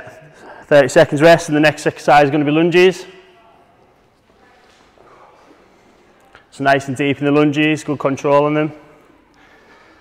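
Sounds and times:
echoing man's voice: 0.0s - 3.5s, 6.5s - 9.0s.

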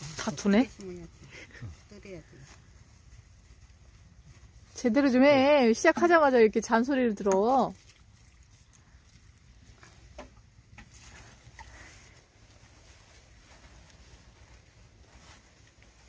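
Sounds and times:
hand hoe scraping soil: 7.7s - 12.2s.

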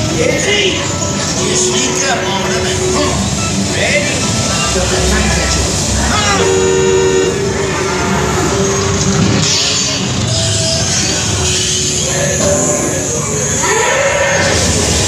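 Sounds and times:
voices over loudspeakers: 0.0s - 8.9s
soundtrack music over loudspeakers: 0.0s - 13.7s
horn honking: 4.2s - 8.7s.

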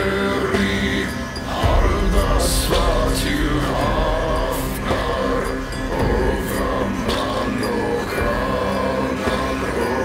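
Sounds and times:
drone of bowed strings: 0.0s - 10.0s
man singing chant-like melody: 0.0s - 10.0s.

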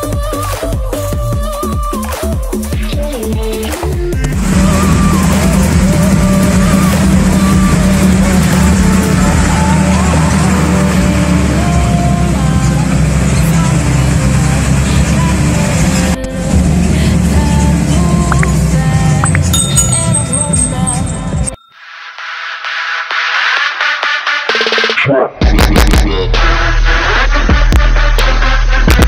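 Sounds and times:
music: 0.0s - 29.0s
vehicle engine running: 4.2s - 21.6s.

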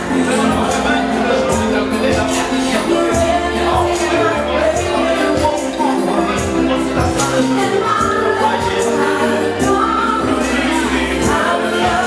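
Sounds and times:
voices singing over instruments: 0.0s - 12.0s.

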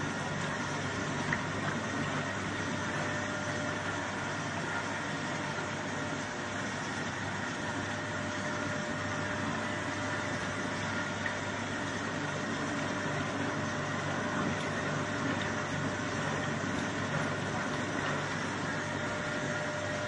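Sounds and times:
washing machine running: 0.0s - 20.0s.

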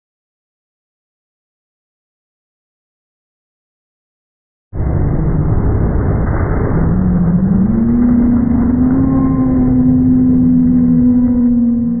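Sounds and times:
truck engine revving: 4.8s - 12.0s.

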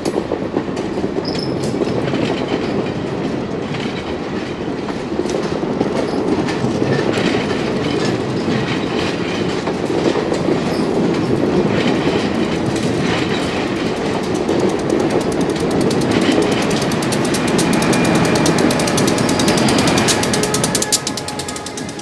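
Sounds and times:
train wheels rumbling on rail: 0.0s - 22.0s
wheel clicks over track: 12.7s - 22.0s.

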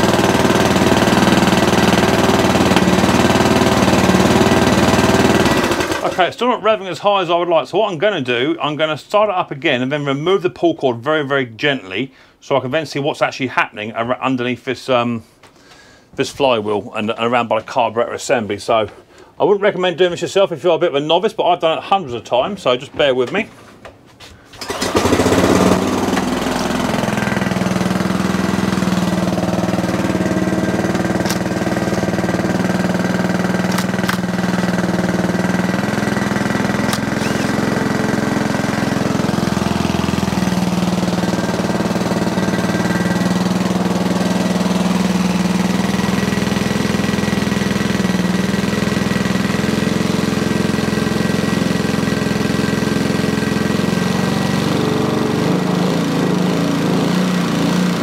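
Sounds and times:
lawnmower engine running: 0.0s - 6.4s, 24.6s - 58.0s.

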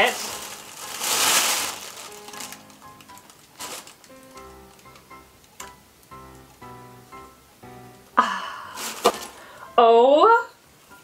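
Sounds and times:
tissue paper rustling: 0.0s - 5.0s, 8.7s - 9.6s
soft music with plucked notes: 0.0s - 11.0s.

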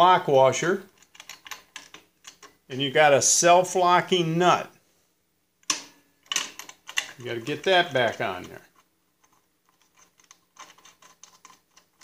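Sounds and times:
metallic clicks of steel hardware: 1.0s - 2.6s, 5.6s - 7.3s.

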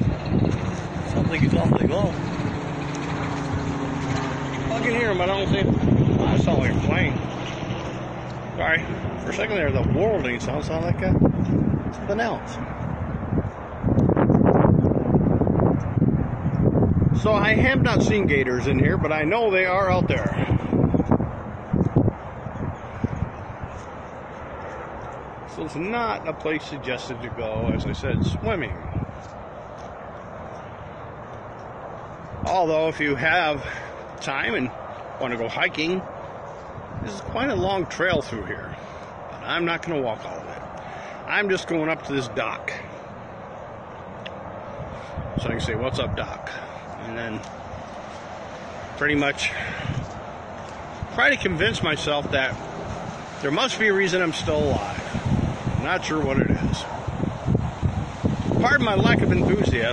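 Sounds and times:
distant aircraft drone: 0.0s - 59.9s
distant road traffic rumble: 0.0s - 59.9s.

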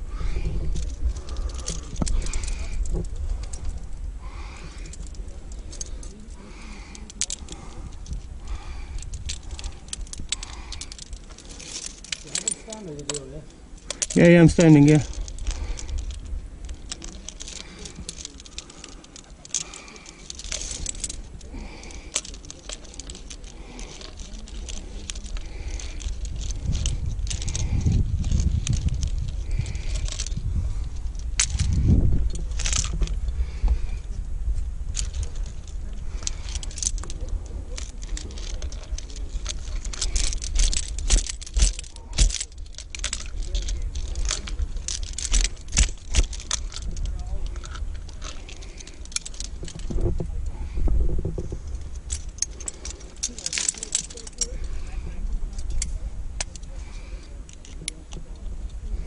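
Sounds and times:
climbing gear clinking: 0.0s - 59.0s
carabiner clipping: 0.2s - 59.0s.

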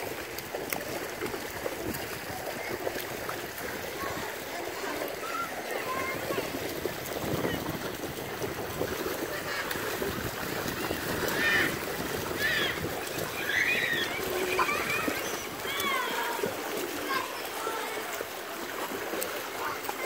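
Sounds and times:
swimmers splashing: 0.0s - 20.0s
children shouting: 3.9s - 7.7s, 9.1s - 18.4s.

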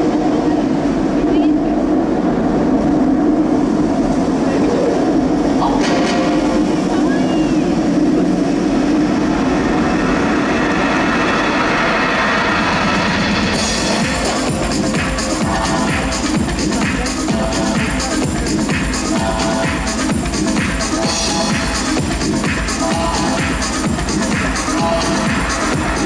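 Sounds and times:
electronic dance track: 0.0s - 26.0s
loud rumbling drone: 0.0s - 26.0s.

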